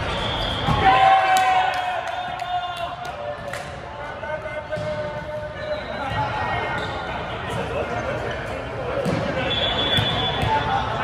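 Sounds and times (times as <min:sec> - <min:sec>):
echoing voices and chatter: 0:00.0 - 0:11.0.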